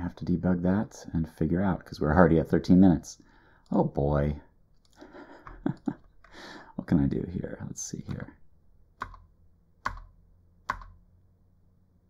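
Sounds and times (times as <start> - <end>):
computer keyboard keystrokes: 9.0 - 10.1, 10.7 - 11.0.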